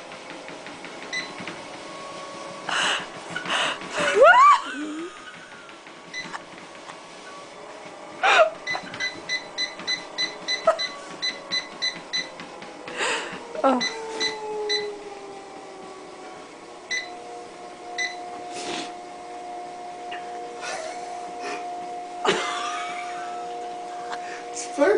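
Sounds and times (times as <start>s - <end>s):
treadmill motor whine: 0.0s - 24.9s.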